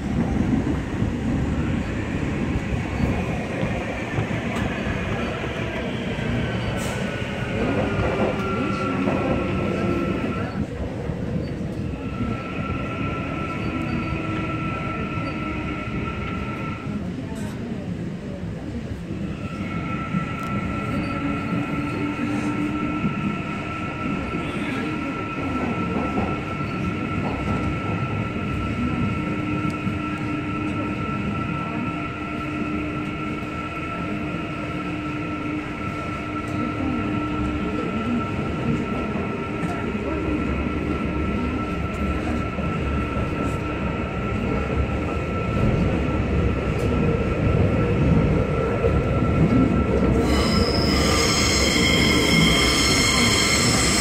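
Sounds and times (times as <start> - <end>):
high-pitched train whine: 0.0 - 10.8, 11.4 - 17.2, 19.0 - 54.0
subway train wheels rumbling on rail: 0.0 - 54.0.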